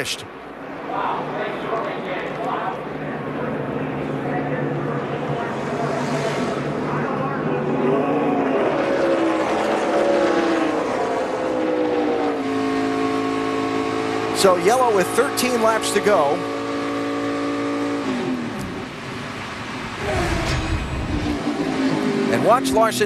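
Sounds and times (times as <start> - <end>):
race car engines passing: 0.0 - 23.0.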